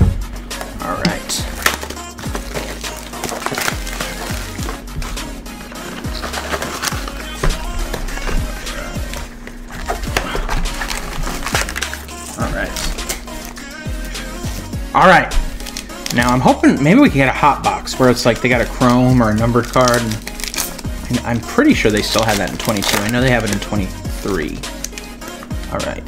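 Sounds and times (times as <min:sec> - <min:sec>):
background music: 0:00.0 - 0:26.0
plastic wrap crinkling and tearing: 0:00.8 - 0:13.6, 0:14.4 - 0:17.0, 0:18.0 - 0:25.4.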